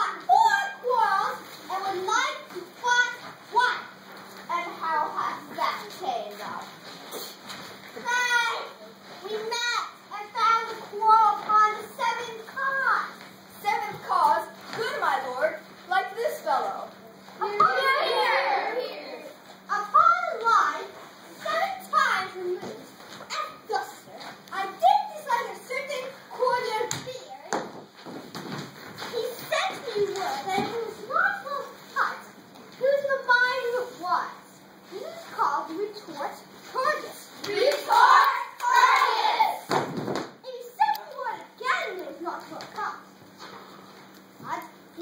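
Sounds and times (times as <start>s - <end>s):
children speaking: 0.0s - 27.7s, 29.0s - 39.8s, 40.4s - 43.5s, 44.4s - 45.0s
children calling out: 17.4s - 20.4s, 36.8s - 39.7s.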